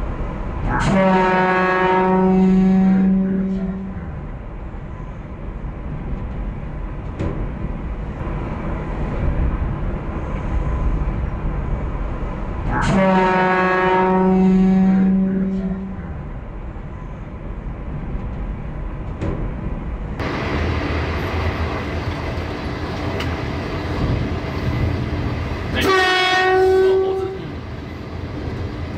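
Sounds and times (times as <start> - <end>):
train running on rails: 0.0 - 28.9
train horn blasts: 0.6 - 4.2, 12.7 - 16.2, 25.7 - 27.6.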